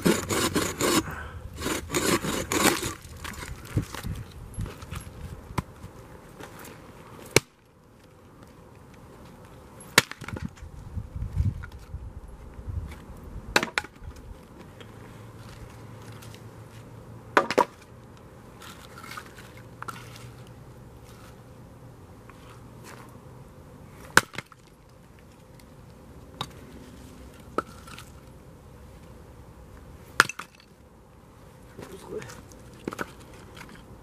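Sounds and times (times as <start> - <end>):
hatchet chopping wood: 0.0 - 3.0, 7.3 - 7.6, 10.0 - 10.5, 13.5 - 14.0, 17.4 - 17.8, 24.1 - 24.6, 30.2 - 30.6.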